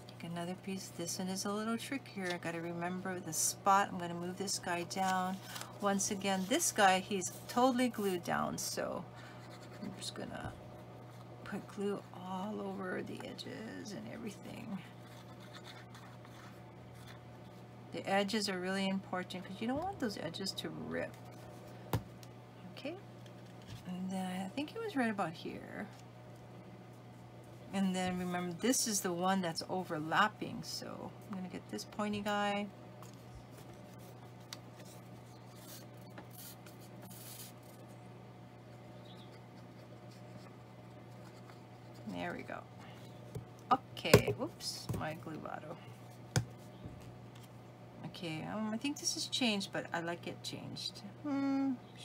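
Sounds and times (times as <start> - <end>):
low steady hum: 0.0 - 52.0
paper handling: 5.0 - 6.7.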